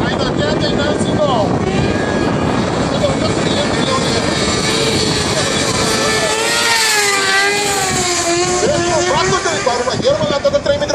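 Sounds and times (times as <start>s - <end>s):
motorcycle engine at high revs: 1.5s - 10.9s.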